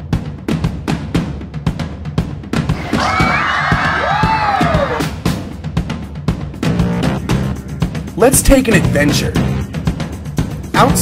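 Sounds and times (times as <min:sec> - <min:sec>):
music with steady drum beat: 0:00.0 - 0:11.0
children cheering and shouting: 0:02.8 - 0:05.1
long whoop: 0:02.8 - 0:05.1.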